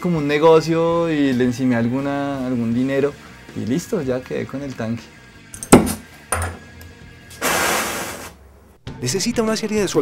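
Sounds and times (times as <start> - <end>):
gas welding torch hissing: 7.3 - 8.4.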